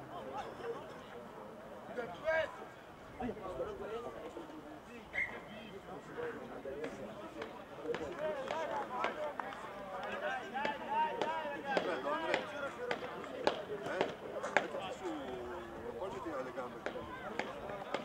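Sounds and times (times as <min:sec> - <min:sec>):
voices talking and calling: 0:00.0 - 0:18.0.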